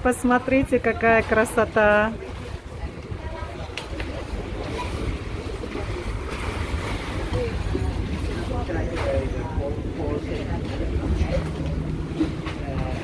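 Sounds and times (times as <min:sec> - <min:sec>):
water lapping: 0:00.0 - 0:13.0
wind noise on microphone: 0:00.0 - 0:13.0.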